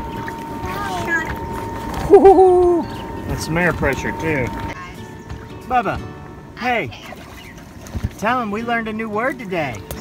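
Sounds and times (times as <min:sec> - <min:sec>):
blower humming: 0:00.0 - 0:05.1.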